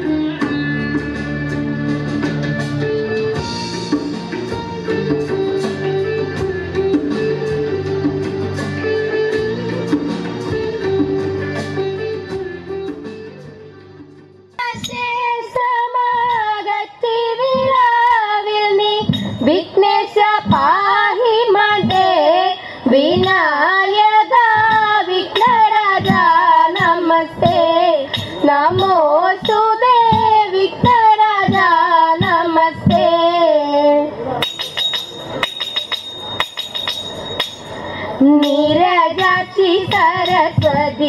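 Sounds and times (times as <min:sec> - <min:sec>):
young female voice singing: 0:14.6 - 0:34.3, 0:38.2 - 0:41.0.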